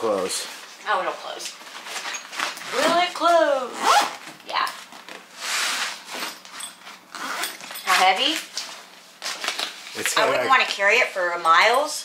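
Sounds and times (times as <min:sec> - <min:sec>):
zipper on fabric bag: 0:03.6 - 0:04.2, 0:07.1 - 0:08.2.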